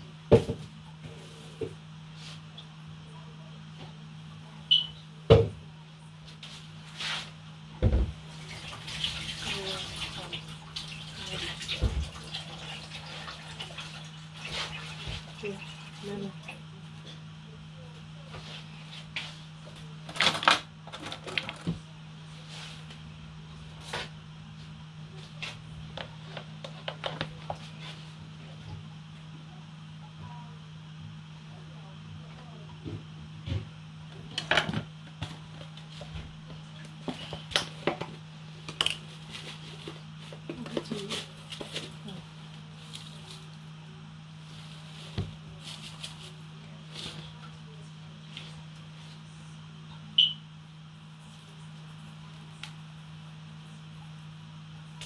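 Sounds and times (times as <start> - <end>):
steady low hum: 0.0 - 55.0
kitchen tap running: 8.3 - 16.6.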